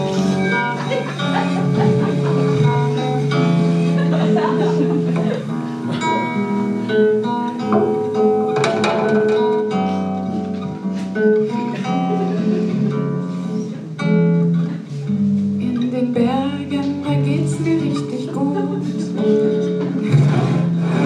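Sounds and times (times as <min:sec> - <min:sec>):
acoustic guitar with instruments: 0:00.0 - 0:21.0.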